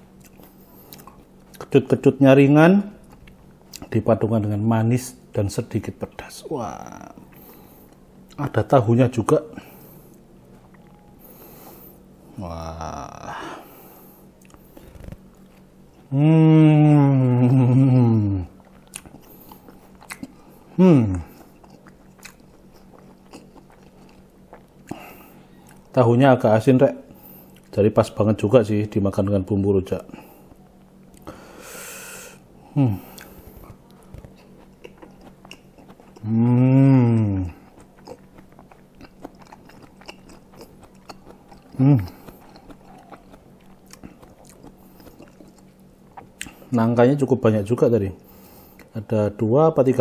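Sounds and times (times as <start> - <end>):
person chewing softly: 0.1 - 2.0, 2.9 - 4.1, 5.1 - 26.1, 26.7 - 28.6, 29.8 - 47.0, 48.2 - 49.1
person humming: 12.4 - 13.6, 16.0 - 18.6, 20.8 - 21.3, 32.7 - 33.2, 36.2 - 37.6, 41.7 - 42.2.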